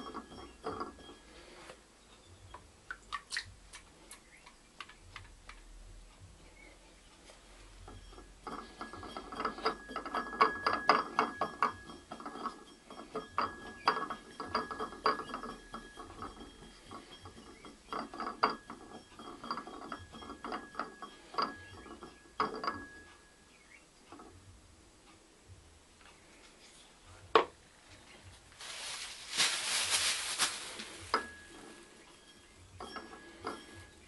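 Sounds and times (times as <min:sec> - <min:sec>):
thin steady whine: 0:00.0 - 0:02.8, 0:05.8 - 0:28.6, 0:30.0 - 0:34.0.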